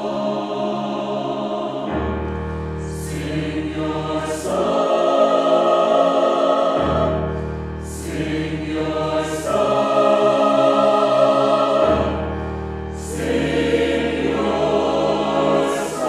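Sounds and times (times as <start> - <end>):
mixed choir singing held chords: 0.0 - 16.0.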